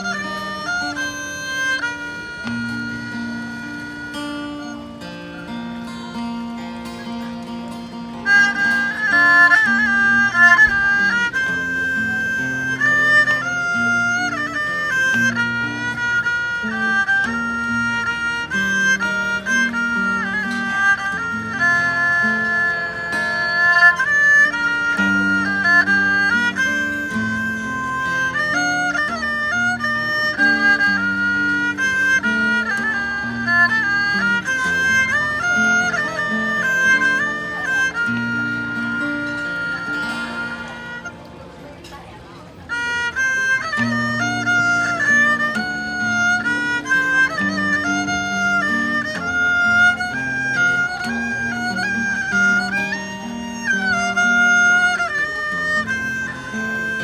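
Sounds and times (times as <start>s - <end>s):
bowed fiddle melody: 0.0s - 57.0s
guitar accompaniment: 0.0s - 57.0s.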